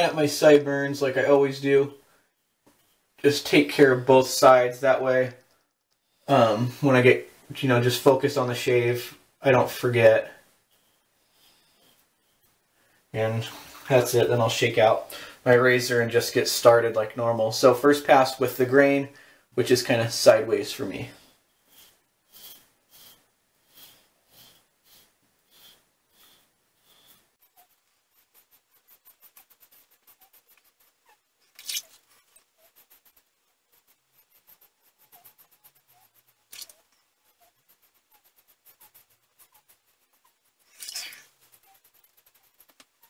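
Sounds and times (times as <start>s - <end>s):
razor scraping stubble: 19.7s - 43.0s.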